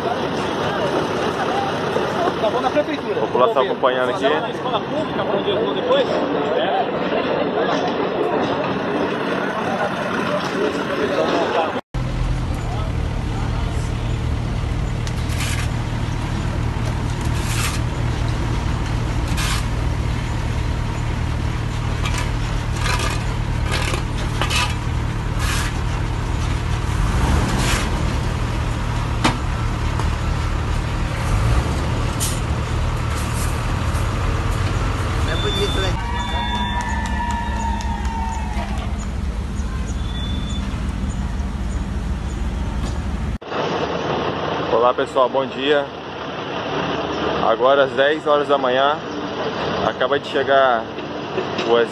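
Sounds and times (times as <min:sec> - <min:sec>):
truck diesel engines rumbling: 0:00.0 - 0:51.9
wavering high squeal: 0:35.3 - 0:40.8.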